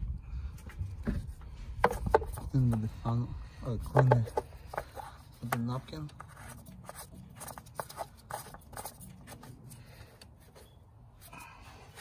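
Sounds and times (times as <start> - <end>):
oil cap knocking and rubbing: 1.0 - 2.9, 3.8 - 9.6.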